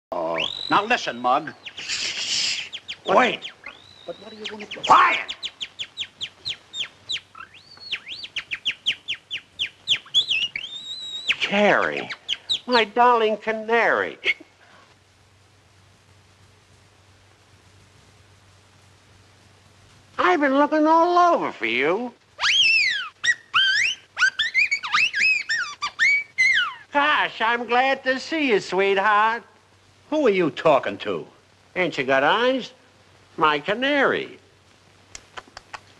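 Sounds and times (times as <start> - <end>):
whistled bird-like chirping: 0.2 - 12.8, 22.4 - 26.9.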